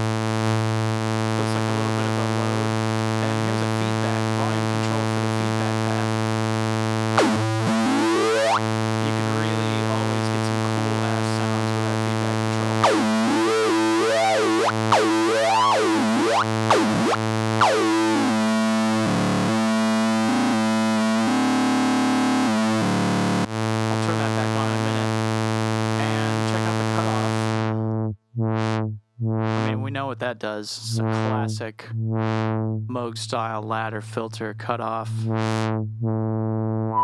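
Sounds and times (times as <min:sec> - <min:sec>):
synthesizer low note with filter sweep: 0:00.0 - 0:30.0, 0:30.9 - 0:33.0, 0:35.1 - 0:37.0.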